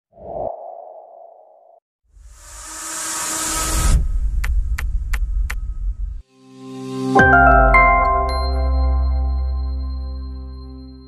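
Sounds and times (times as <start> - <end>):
deep rumble: 3.8 - 6.2.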